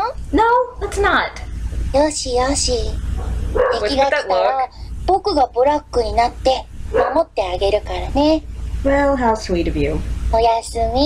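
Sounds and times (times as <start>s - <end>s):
boy speaking in sing-song voice: 2.0s - 3.0s, 3.7s - 9.4s, 10.3s - 11.0s.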